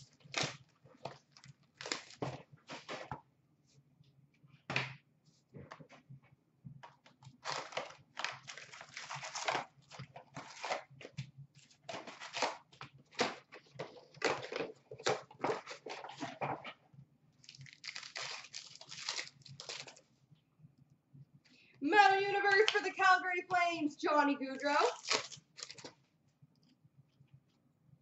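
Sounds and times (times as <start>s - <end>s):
wrapped packs crinkling: 0.0s - 3.1s, 7.3s - 16.4s, 17.4s - 20.0s, 24.8s - 25.9s
pack ripped open: 1.4s - 2.3s, 7.4s - 10.9s, 17.5s - 20.0s, 24.9s - 25.9s
cardboard box tearing: 7.4s - 9.7s, 10.3s - 10.9s.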